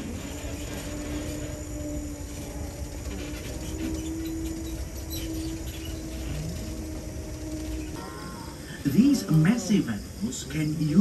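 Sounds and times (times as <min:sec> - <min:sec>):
tram rumble and humming drone: 0:00.0 - 0:11.0.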